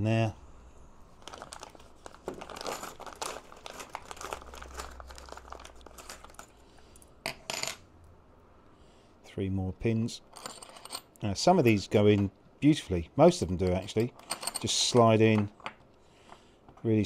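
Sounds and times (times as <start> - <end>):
small metal parts clinking: 2.4 - 7.8, 10.3 - 11.8, 13.8 - 15.8.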